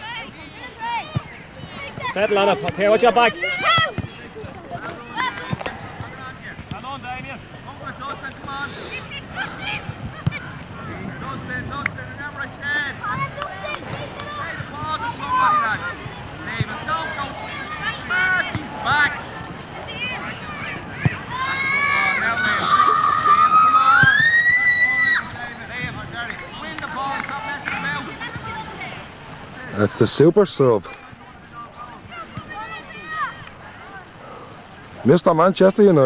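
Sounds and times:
distant voices shouting: 0:00.0 - 0:30.0, 0:30.9 - 0:35.0.

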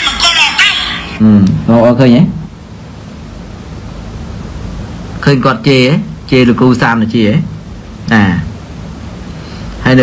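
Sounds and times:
steady background hiss: 0:00.0 - 0:10.0
man speaking: 0:05.2 - 0:08.6.

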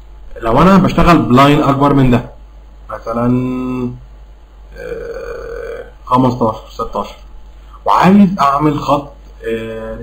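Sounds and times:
man saying uhh: 0:04.7 - 0:06.0.

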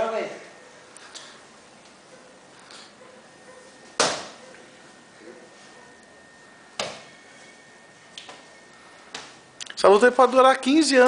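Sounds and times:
boxing glove punch smack: 0:04.0 - 0:04.4.

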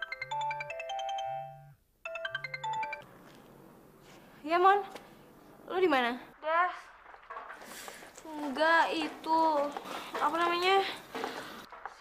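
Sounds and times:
phone ringtone melody: 0:00.0 - 0:03.1.

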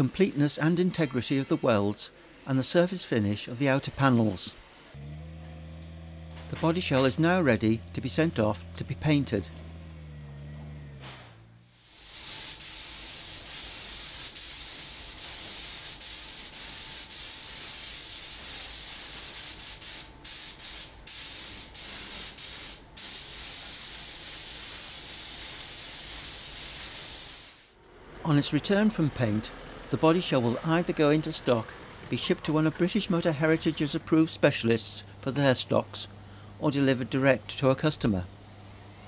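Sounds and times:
forklift engine running: 0:05.0 - 0:11.7, 0:27.8 - 0:35.3
paint spray gun hissing: 0:11.7 - 0:27.8.

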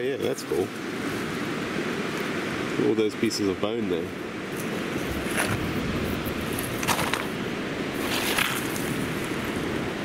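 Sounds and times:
wind and surf: 0:00.0 - 0:10.0
pebbles crunching and scraping: 0:06.5 - 0:07.4, 0:08.0 - 0:09.0.

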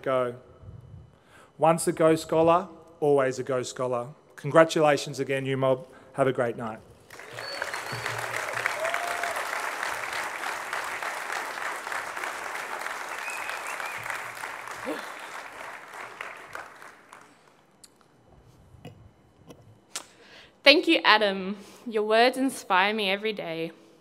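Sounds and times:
audience applause: 0:07.1 - 0:17.6.

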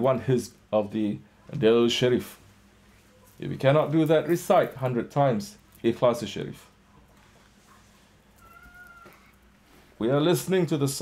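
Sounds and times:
cat meowing: 0:08.4 - 0:09.4.

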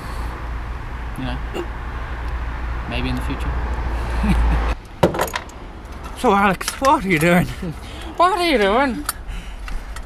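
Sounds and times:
metallic rattling and clinking: 0:05.0 - 0:07.3.

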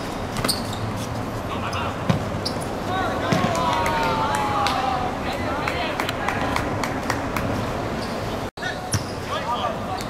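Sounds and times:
players calling out: 0:01.5 - 0:06.7.

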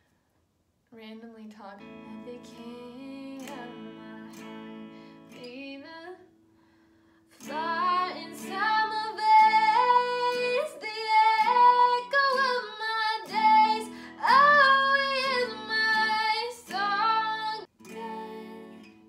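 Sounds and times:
woman singing: 0:01.0 - 0:06.3, 0:07.3 - 0:19.0
strummed guitar: 0:01.8 - 0:19.0.

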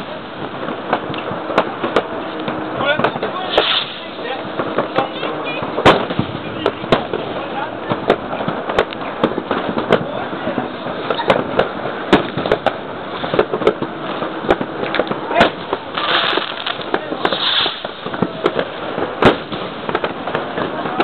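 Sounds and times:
distant fireworks: 0:00.0 - 0:21.0
firecrackers banging: 0:00.0 - 0:21.0.

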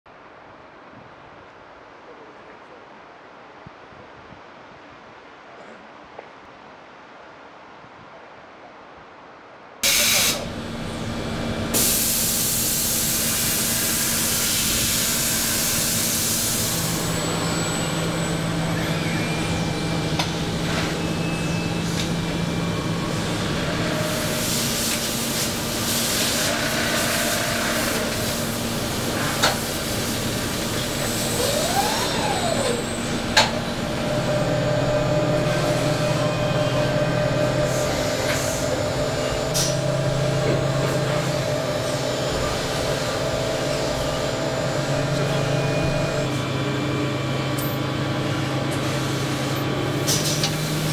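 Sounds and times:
machine whine: 0:09.8 - 0:50.9
machinery hum: 0:09.8 - 0:50.9
compressed air hissing: 0:11.7 - 0:17.1.

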